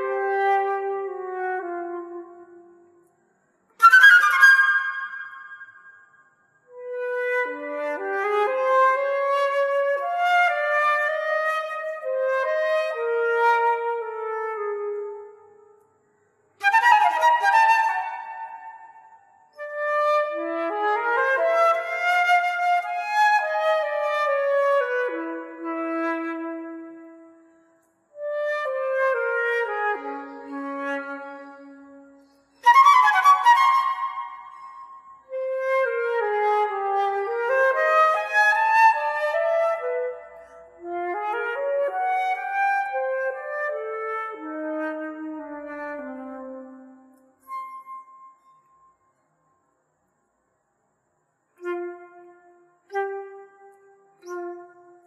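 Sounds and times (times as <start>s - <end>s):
flute playing classical solo: 3.8s - 6.0s, 6.7s - 15.4s, 16.6s - 27.3s, 28.2s - 48.8s, 51.6s - 55.0s
flautist breathing: 29.9s - 32.8s.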